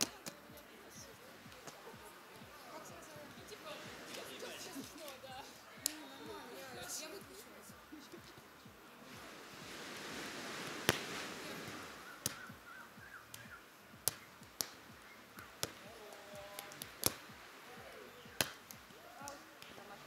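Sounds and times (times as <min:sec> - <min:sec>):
hands slapping volleyball: 0:00.0 - 0:00.7, 0:01.5 - 0:02.5, 0:05.8 - 0:06.2, 0:10.6 - 0:12.6, 0:13.3 - 0:17.3, 0:17.9 - 0:20.0
faint voices: 0:00.0 - 0:20.0
rushing hiss: 0:07.4 - 0:20.0.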